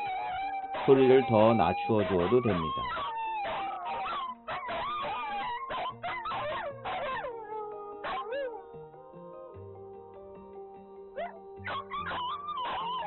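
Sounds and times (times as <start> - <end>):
dogs howling: 0.0 - 8.7, 11.2 - 13.0
background music: 0.0 - 13.0
loudspeaker broadcast: 0.9 - 2.8.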